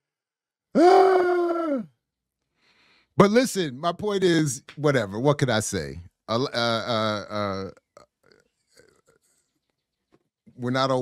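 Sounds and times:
person holding wordless vocal sound: 0.8 - 1.9.

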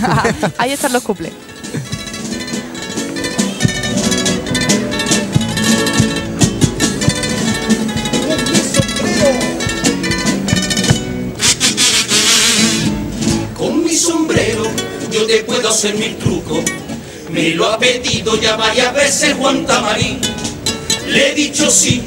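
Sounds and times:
regular drum beats: 0.0 - 13.6, 18.0 - 21.0
strummed guitar chords: 1.4 - 17.2.

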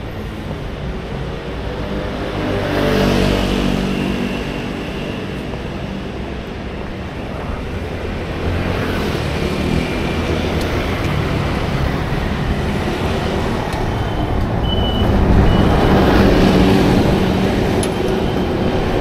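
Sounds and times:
traffic engines rumbling: 0.0 - 19.0.

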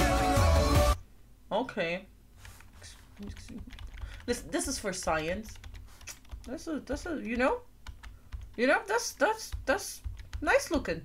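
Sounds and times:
keyboard keys tapping: 2.4 - 10.9.

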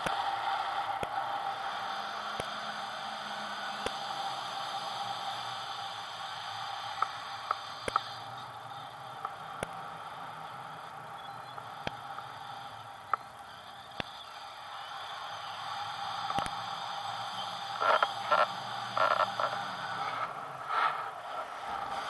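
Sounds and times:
sharp clicks: 16.2 - 16.6.

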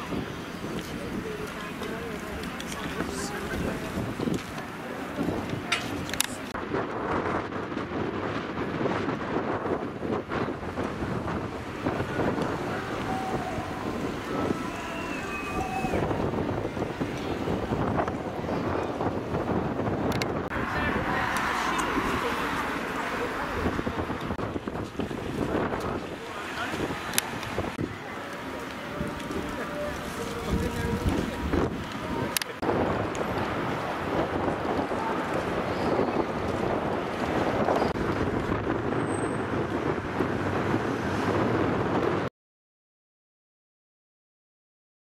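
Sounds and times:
wind buffeting microphone: 0.0 - 42.3
indistinct background voices: 20.5 - 32.9.

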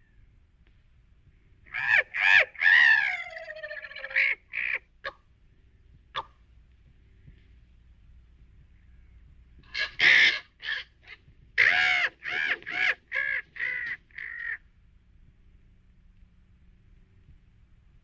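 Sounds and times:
crow cawing: 1.7 - 4.9, 9.7 - 14.6.

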